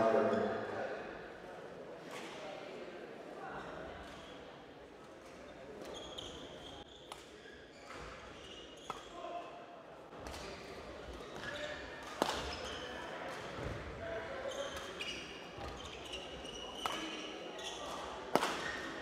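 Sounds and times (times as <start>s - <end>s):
low murmur of hall: 0.0s - 19.0s
shoes squeaking on court floor: 5.7s - 9.2s, 11.1s - 13.8s, 14.4s - 19.0s.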